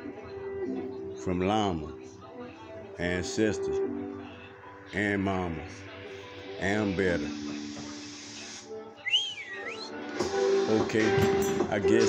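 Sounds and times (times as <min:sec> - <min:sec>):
background music: 0:00.0 - 0:12.0
sliding whistle: 0:09.0 - 0:10.0.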